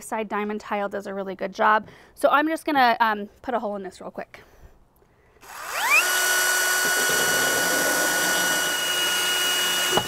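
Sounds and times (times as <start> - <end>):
drill bit grinding: 5.4 - 10.0
drill motor whine: 5.4 - 10.0.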